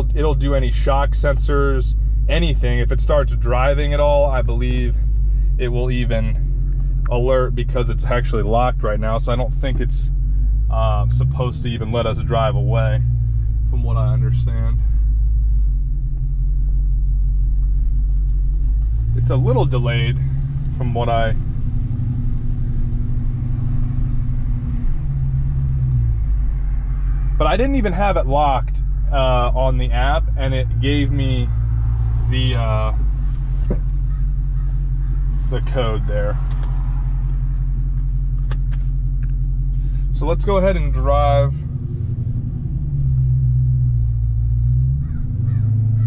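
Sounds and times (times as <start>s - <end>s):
car engine idling: 0.0s - 46.0s.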